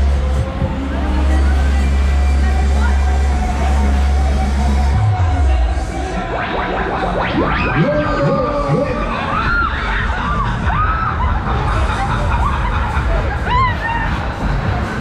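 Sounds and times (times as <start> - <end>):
funfair ride music: 0.0 - 15.0
heavy held bass: 0.0 - 15.0
riders screaming and shrieking: 6.1 - 15.0.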